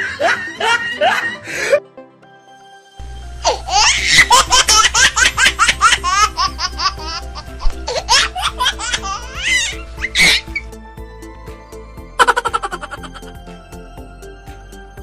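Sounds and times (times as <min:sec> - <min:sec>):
background music: 0:00.0 - 0:15.0
high-pitched giggling: 0:12.2 - 0:13.3.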